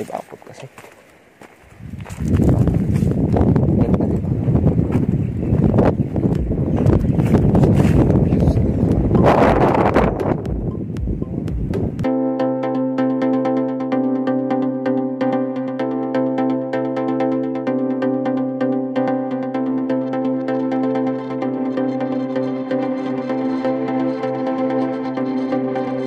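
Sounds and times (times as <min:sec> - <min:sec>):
wind buffeting microphone: 0:01.6 - 0:12.1
electronic music with synth chord: 0:05.6 - 0:26.0.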